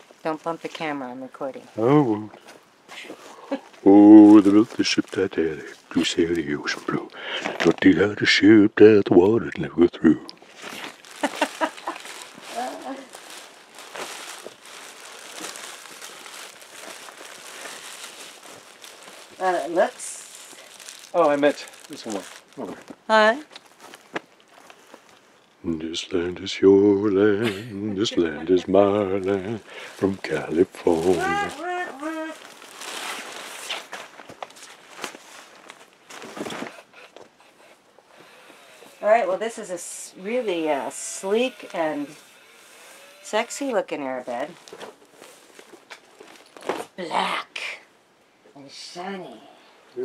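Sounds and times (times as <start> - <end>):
woman's voice: 0.2 - 1.7, 12.5 - 13.1, 19.4 - 20.5, 23.1 - 23.5, 28.0 - 28.8, 31.2 - 32.4, 39.0 - 42.2, 43.3 - 44.6, 47.0 - 47.8, 48.5 - 49.6
plastic and vinyl rustling: 2.4 - 8.0, 10.4 - 25.4, 28.2 - 39.0, 42.9 - 47.0
plastic wrapping crinkling: 3.6 - 8.0, 10.4 - 25.4, 28.7 - 37.0, 43.0 - 47.0.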